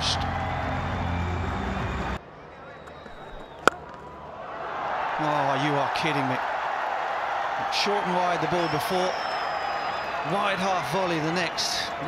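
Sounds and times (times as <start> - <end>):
stadium crowd noise: 0.0 - 12.0
cricket bat hitting ball: 2.9 - 4.2.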